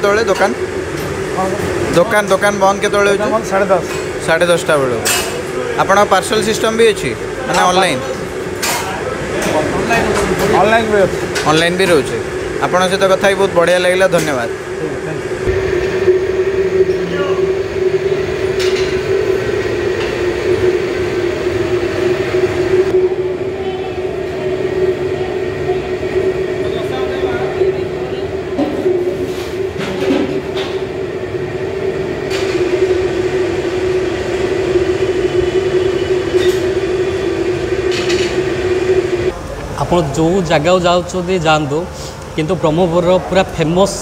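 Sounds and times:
constant mid-pitched hum: 0:00.0 - 0:44.0
gas burner roaring: 0:00.0 - 0:44.0.

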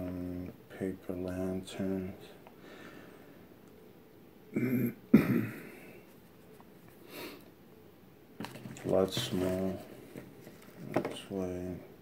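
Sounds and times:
man clearing throat coughing: 0:04.6 - 0:05.9.

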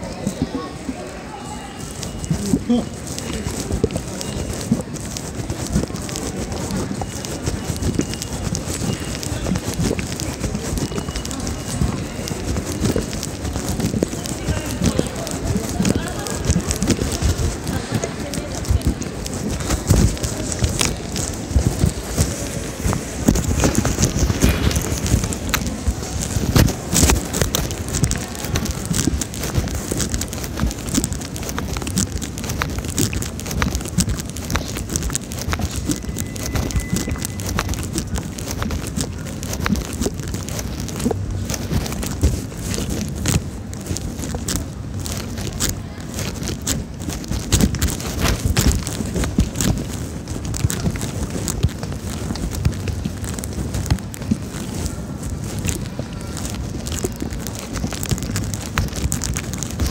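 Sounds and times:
indistinct voices: 0:00.0 - 0:59.9.

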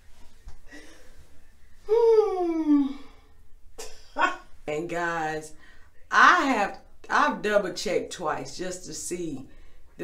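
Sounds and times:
woman humming low: 0:01.9 - 0:03.2.

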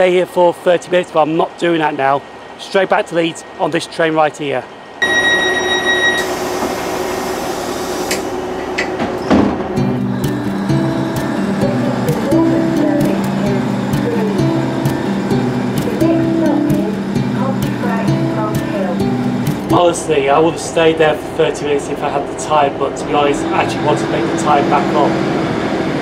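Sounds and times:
train door warning tone: 0:04.8 - 0:07.0, 0:08.1 - 0:20.5
background music with stepping melody: 0:09.6 - 0:20.0.

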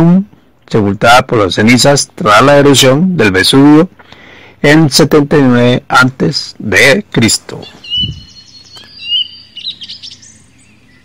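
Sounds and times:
small birds chirping: 0:05.5 - 0:11.0.

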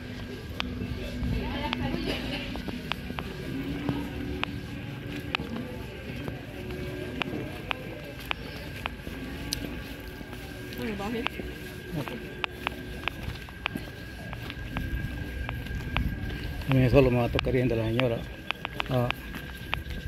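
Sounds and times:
distant voices: 0:00.0 - 0:20.0
street music: 0:00.0 - 0:20.0.

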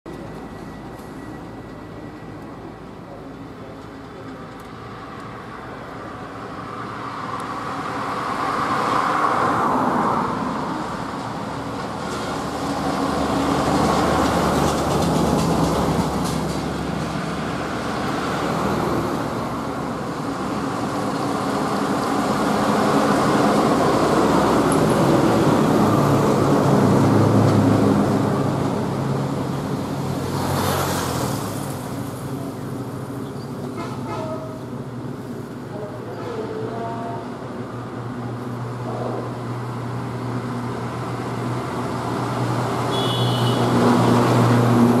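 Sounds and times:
buses and trucks passing: 0:00.1 - 0:45.0.

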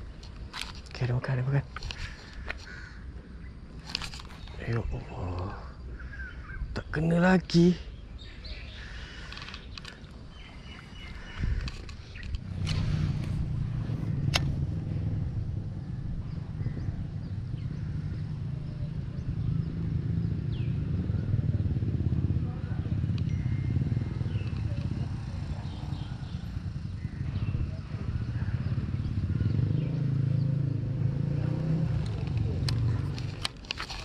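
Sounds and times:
steady low rumble: 0:07.9 - 0:33.8
sharp click: 0:14.2 - 0:14.6.

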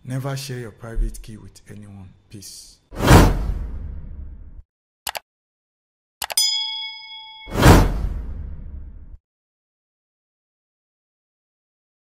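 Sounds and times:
bell-like ding: 0:06.4 - 0:08.1
loud whoosh: 0:07.5 - 0:09.2.

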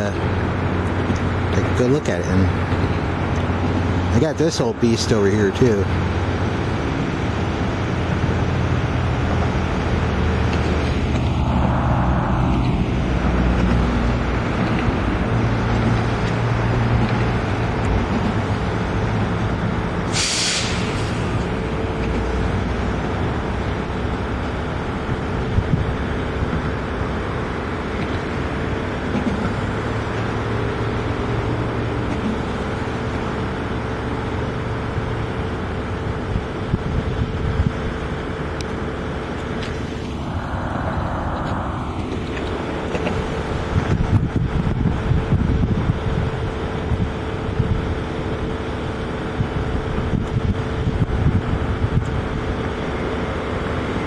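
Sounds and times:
constant hum: 0:00.0 - 0:54.0
road traffic din: 0:00.0 - 0:54.0
rush of noise: 0:00.0 - 0:54.0.

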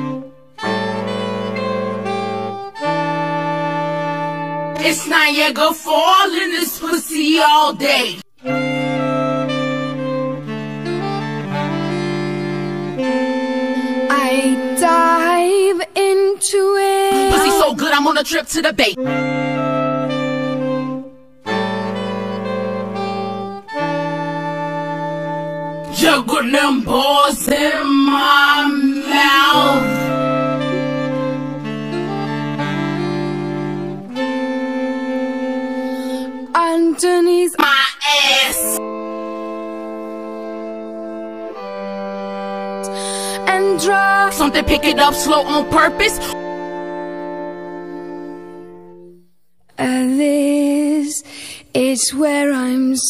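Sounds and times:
saxophone ensemble chords: 0:00.0 - 0:07.0, 0:07.8 - 0:16.1, 0:16.9 - 0:18.2, 0:18.8 - 0:49.6.

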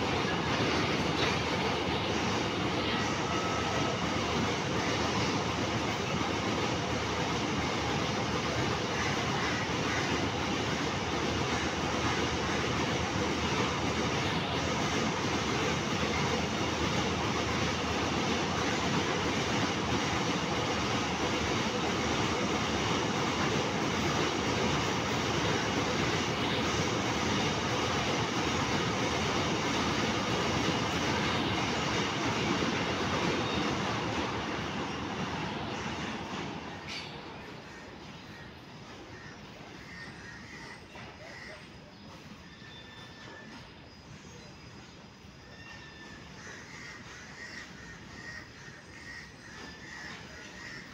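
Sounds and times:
train wheels rolling on rails: 0:00.0 - 0:50.9.

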